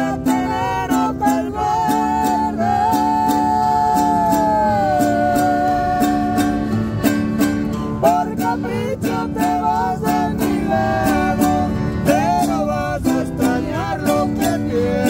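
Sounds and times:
person singing: 0.0s - 6.8s, 8.0s - 15.0s
acoustic guitar strumming: 0.0s - 15.0s.

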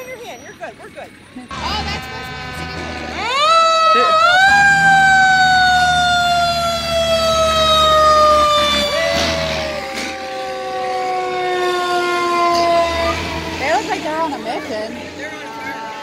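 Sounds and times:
truck engines rumbling: 0.0s - 16.0s
fire engine siren wailing: 1.5s - 16.0s
second siren tone: 3.8s - 13.6s.

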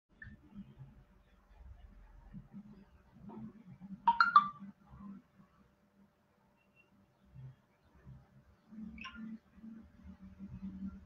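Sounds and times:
electronic notification chime: 4.1s - 4.6s.

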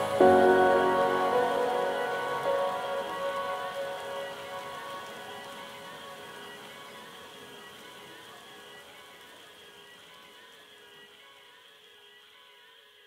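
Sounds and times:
held music chord: 0.0s - 7.3s
soft hiss: 0.0s - 12.9s.

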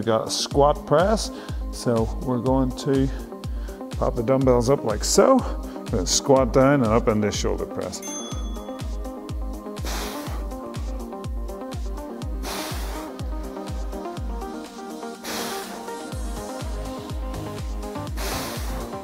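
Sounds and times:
kick drum beat: 0.6s - 9.7s, 10.3s - 14.8s, 16.1s - 19.0s
rising hiss: 12.3s - 13.7s, 14.5s - 17.2s, 17.9s - 19.0s.

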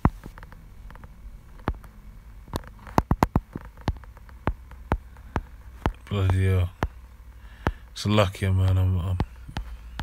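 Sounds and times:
fingers tapping smartphone: 0.0s - 8.0s, 9.2s - 10.0s.

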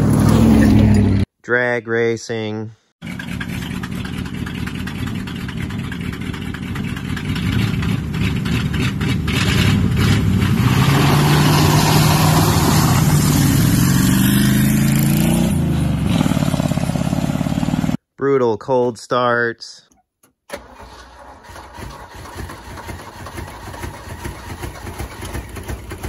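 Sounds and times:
muscle car engine: 0.0s - 1.2s, 3.0s - 18.0s, 20.5s - 26.0s
pickup truck engine: 0.0s - 1.2s, 3.0s - 18.0s, 20.5s - 26.0s.

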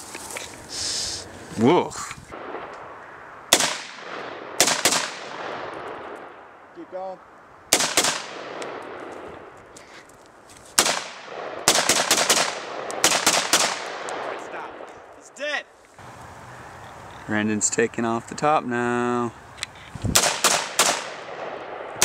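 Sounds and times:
rifle gunshots with echo: 2.3s - 6.4s, 7.7s - 9.5s, 10.8s - 15.1s, 20.1s - 22.0s.

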